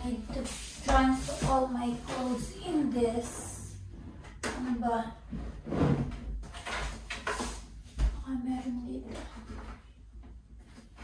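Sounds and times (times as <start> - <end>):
plastic table scraping on wooden floor: 0.3 - 7.6.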